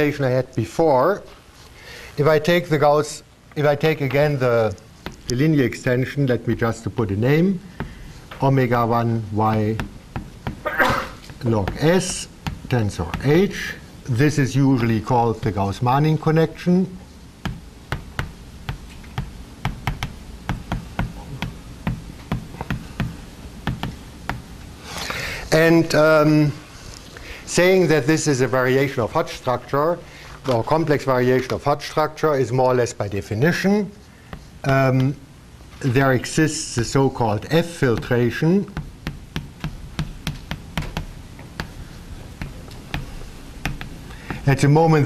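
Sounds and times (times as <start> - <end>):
chalk tapping on blackboard: 5.0 - 5.3, 7.8 - 8.0, 9.4 - 10.6, 11.2 - 13.7, 17.4 - 24.5, 37.8 - 44.5.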